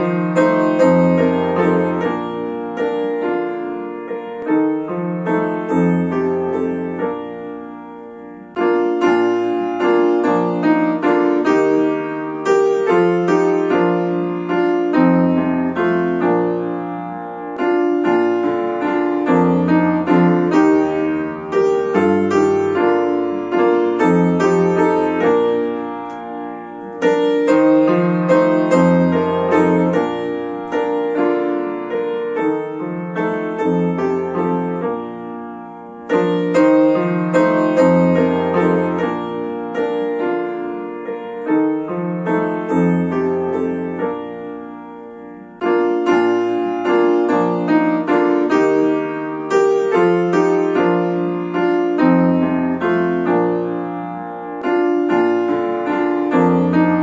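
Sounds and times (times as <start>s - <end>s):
upright piano playing a hymn: 0.0s - 57.0s.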